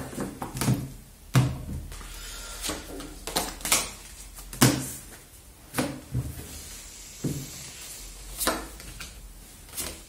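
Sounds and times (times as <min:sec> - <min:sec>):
cards clicking and slapping on table: 0:02.6 - 0:05.0, 0:08.4 - 0:10.0.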